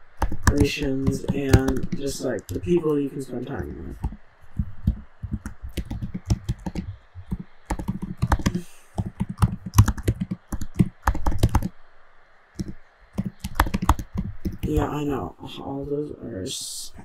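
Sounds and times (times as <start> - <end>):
computer keyboard typing: 0.2 - 2.9, 3.9 - 11.7, 12.6 - 14.9.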